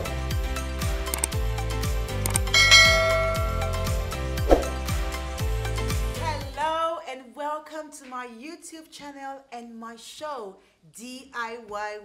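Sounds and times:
background music with low drum beat: 0.0 - 6.8
bell-like ding: 2.5 - 4.0.

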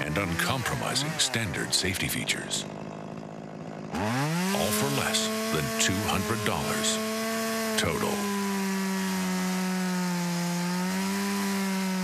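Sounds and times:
chainsaw cutting a log: 0.0 - 12.0.

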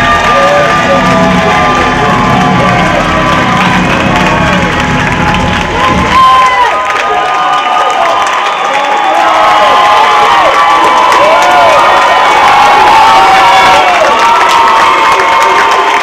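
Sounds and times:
audience cheering and screaming: 0.0 - 16.0
people clapping: 0.0 - 16.0.

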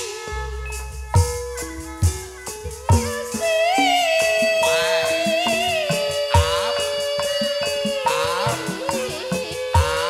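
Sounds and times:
ringing metallophone notes: 0.0 - 10.0
sharp hand drum strokes: 0.0 - 10.0
wavering melody line: 0.0 - 10.0.

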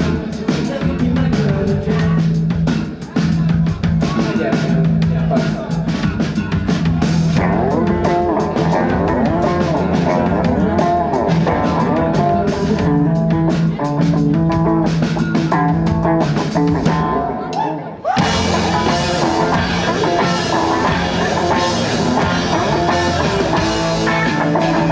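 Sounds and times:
drum kit: 0.0 - 24.9
electric guitars with bending notes: 0.0 - 24.9
steady bass note: 18.2 - 24.9.

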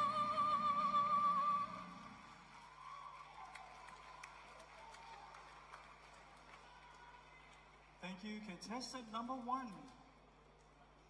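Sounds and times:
musical accompaniment: 0.0 - 2.2.

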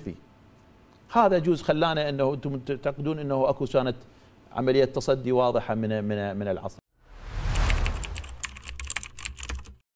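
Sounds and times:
low whoosh: 7.0 - 8.8
keyboard typing clicks: 7.7 - 9.8.

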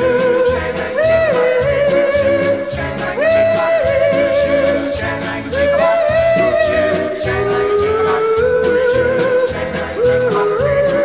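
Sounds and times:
voices singing in harmony: 0.0 - 11.0.

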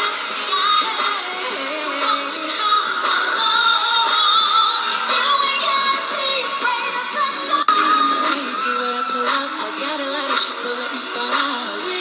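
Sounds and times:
backing track: 0.0 - 12.0
women singing pop music: 0.0 - 12.0.

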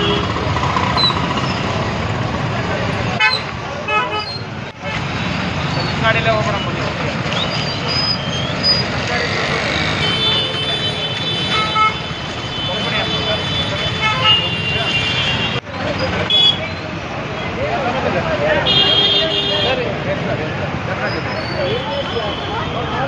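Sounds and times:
vehicle horns: 0.0 - 0.5, 3.2 - 5.4, 9.2 - 15.6, 16.2 - 16.7, 18.6 - 19.8, 21.6 - 23.0
crowd talking: 0.0 - 23.0
traffic noise: 0.0 - 23.0.

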